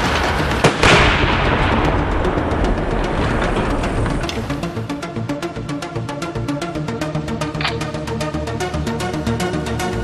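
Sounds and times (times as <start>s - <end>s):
large explosion: 0.0s - 4.2s
background music: 0.0s - 10.0s.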